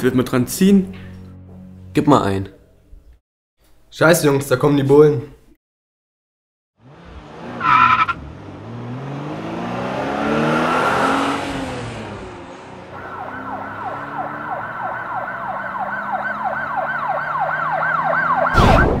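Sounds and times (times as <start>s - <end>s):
car engine passing by: 6.8s - 18.5s
tyre screech: 7.6s - 8.2s
police siren wailing: 12.9s - 19.0s
loud crash: 18.5s - 19.0s.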